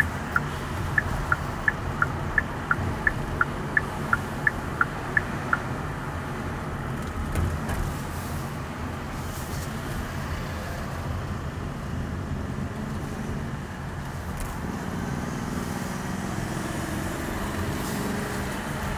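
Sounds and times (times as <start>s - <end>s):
car engine and road noise: 0.0s - 18.9s.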